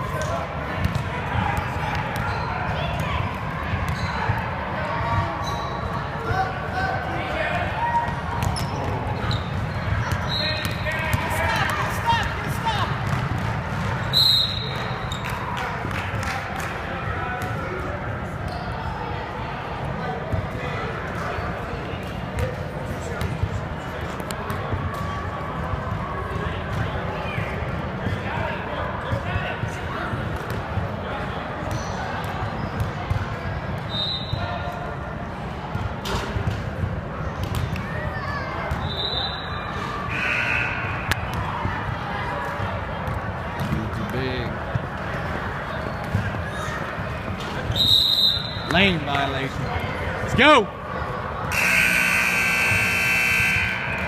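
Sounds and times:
spectators' voices: 0.0 - 54.0.

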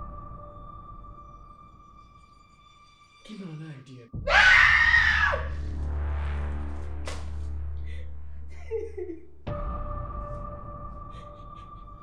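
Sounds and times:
high-pitched scream: 4.3 - 5.6.

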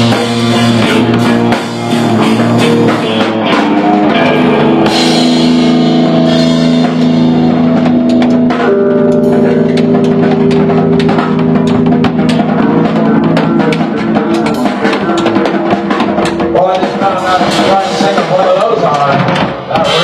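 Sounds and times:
drum and cymbal hits: 0.0 - 20.0
electric guitar sustained notes: 0.0 - 20.0
live rock band playing: 0.0 - 20.0.

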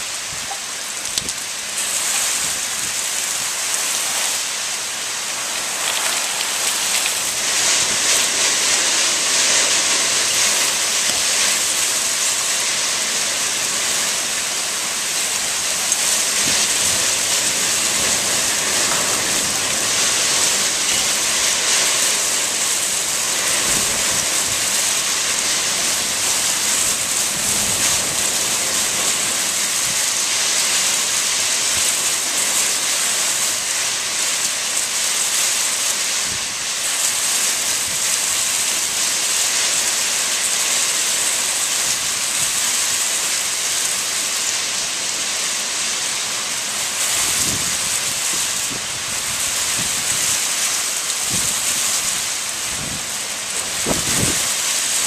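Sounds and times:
heavy rain: 0.0 - 55.0
strong wind rushing: 53.7 - 54.5.

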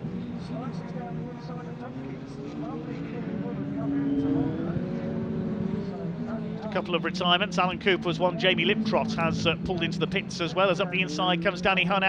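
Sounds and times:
racing truck engines: 0.0 - 12.0.

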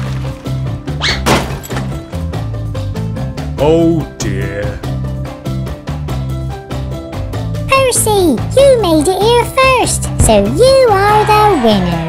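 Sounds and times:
background music with steady beat: 1.9 - 10.9.

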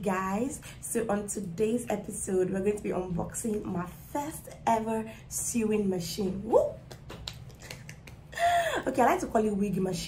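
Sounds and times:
woman speaking: 0.0 - 6.9, 8.4 - 10.0
soft hand claps: 6.8 - 8.3.

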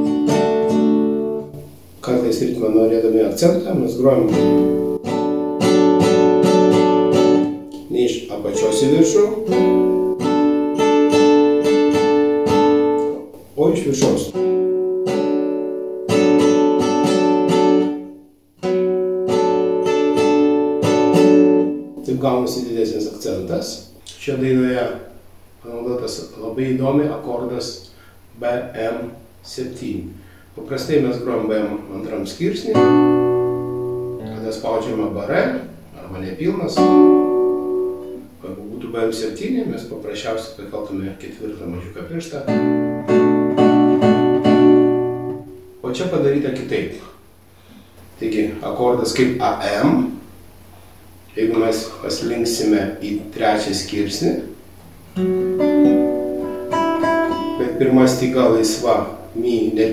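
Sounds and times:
nylon-string guitar strumming: 0.0 - 2.4, 3.7 - 23.1, 32.4 - 38.6, 42.0 - 46.0, 54.6 - 59.6.

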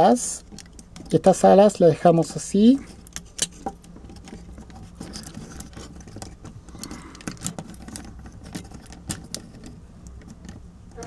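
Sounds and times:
plastic toy joints clicking: 2.9 - 11.0.

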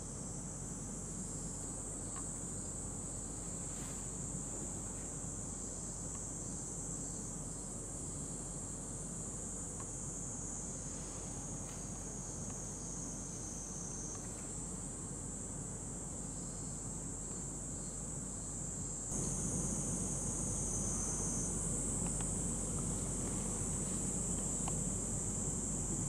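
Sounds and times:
high-pitched insect drone: 0.0 - 26.0.

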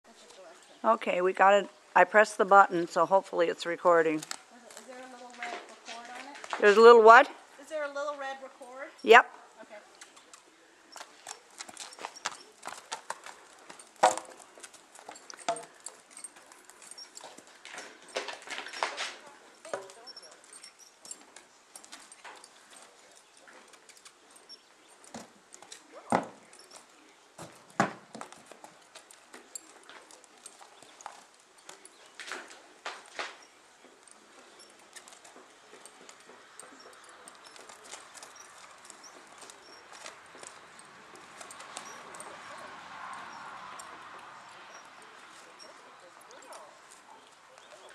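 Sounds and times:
hooves walking on sand: 0.0 - 47.9
hooves knocking on wood: 10.9 - 47.3.

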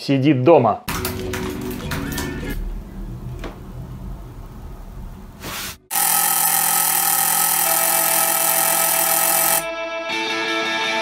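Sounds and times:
doorbell ringing: 5.9 - 9.7.

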